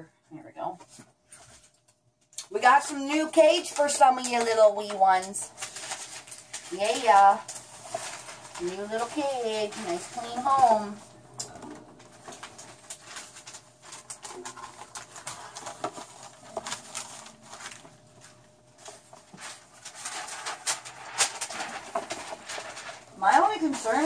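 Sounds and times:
rats scrabbling on cage bars: 11.3 - 24.0.

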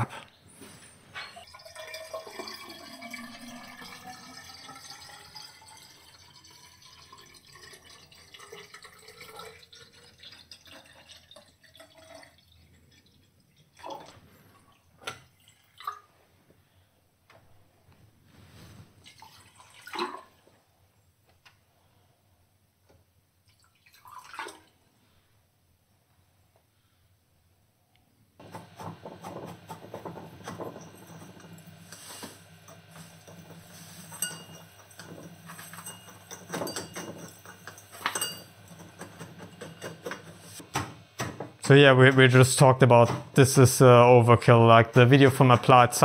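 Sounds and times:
water pouring into glass cylinder: 1.3 - 14.0, 23.6 - 24.6, 29.6 - 40.6
glass knocks and clinks: 34.1 - 40.2.

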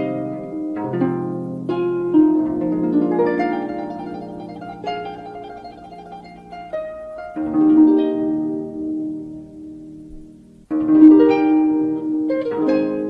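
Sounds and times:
solo harp music: 0.0 - 13.0.

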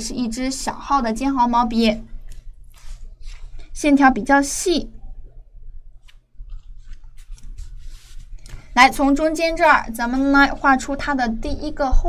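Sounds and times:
low steady hum: 0.0 - 12.0
hands rustling over paper: 2.2 - 3.6, 6.0 - 8.8
brush scratching on paper: 6.0 - 8.4.

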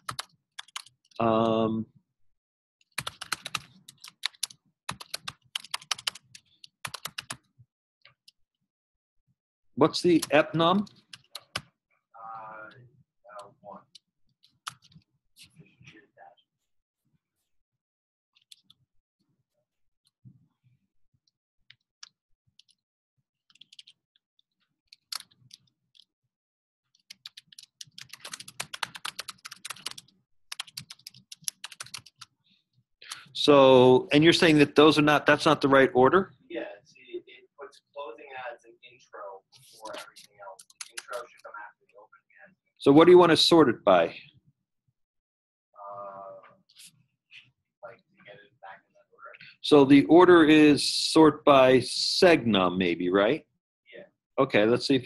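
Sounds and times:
computer keyboard typing: 0.0 - 1.3, 2.9 - 7.5, 10.0 - 11.7, 13.8 - 15.0, 18.4 - 18.8, 23.5 - 24.0, 24.9 - 26.1, 27.0 - 32.4, 39.8 - 41.4.

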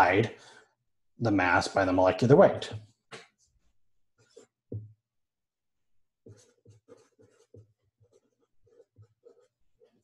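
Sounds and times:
marker writing on paper: 4.1 - 5.0, 6.2 - 10.0.

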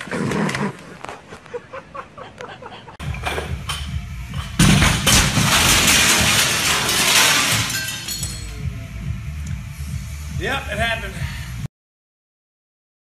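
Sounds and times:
background music: 3.0 - 11.7
glass shattering: 3.2 - 8.6.

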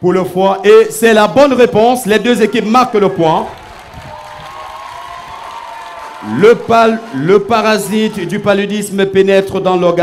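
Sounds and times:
audience applauding: 1.2 - 8.7.

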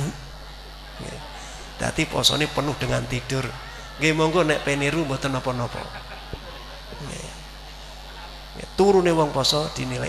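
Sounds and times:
audience laughing: 0.8 - 8.5.

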